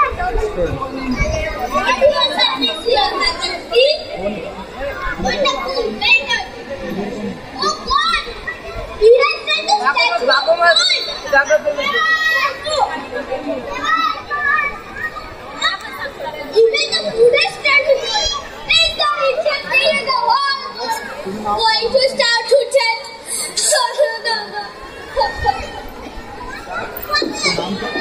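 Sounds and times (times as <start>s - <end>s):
children chattering: 0.0s - 28.0s.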